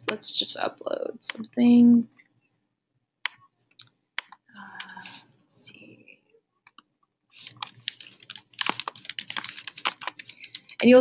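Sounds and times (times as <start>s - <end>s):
computer keyboard typing: 4.2s - 5.2s, 7.4s - 11.0s.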